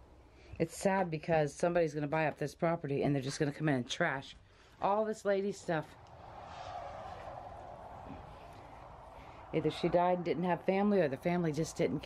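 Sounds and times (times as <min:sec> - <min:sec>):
distant vehicle rumble and hiss: 0:05.6 - 0:12.0.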